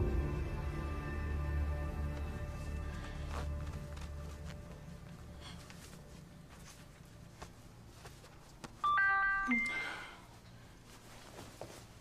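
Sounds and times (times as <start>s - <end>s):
electronic doorbell chime: 8.8s - 10.0s.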